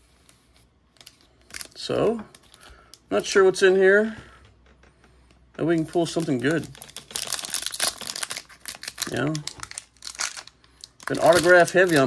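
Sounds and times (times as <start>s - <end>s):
wrapper tearing and crinkling: 1.0s - 2.6s, 5.8s - 12.0s.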